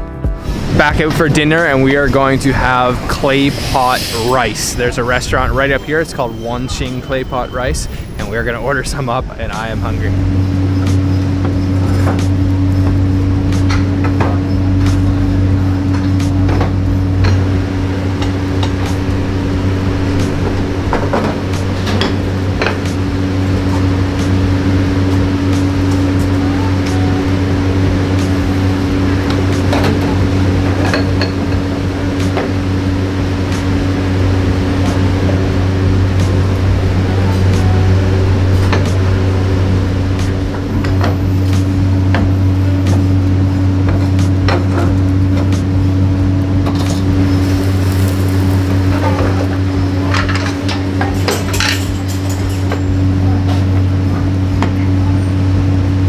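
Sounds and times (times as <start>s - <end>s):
low kitchen hum: 0.6s - 56.0s.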